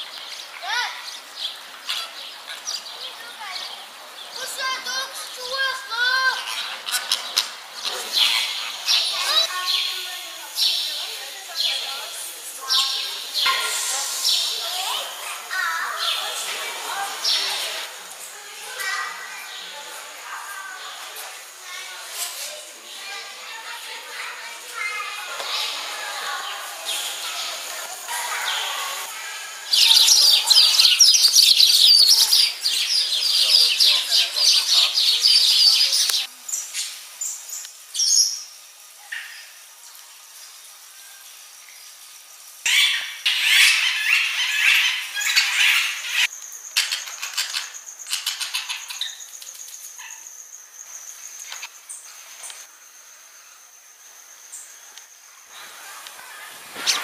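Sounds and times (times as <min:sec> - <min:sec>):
many birds chirping: 0:00.0 - 0:40.9, 0:41.9 - 0:57.0
outdoor background murmur: 0:00.0 - 0:53.5, 0:54.1 - 0:57.0
faint indistinct voices: 0:01.8 - 0:36.4.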